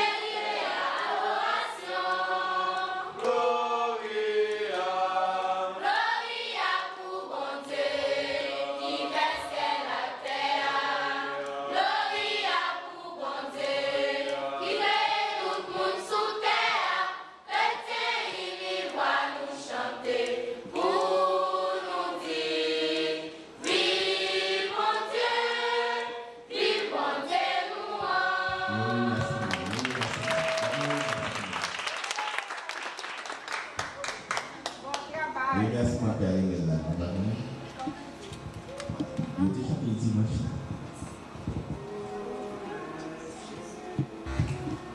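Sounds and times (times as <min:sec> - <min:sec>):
female choir singing: 0:00.0 - 0:29.9, 0:41.8 - 0:44.9.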